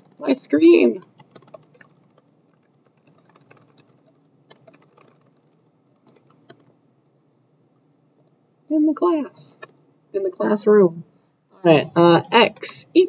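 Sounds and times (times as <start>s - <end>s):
typing on computer keyboard: 0.0s - 6.7s.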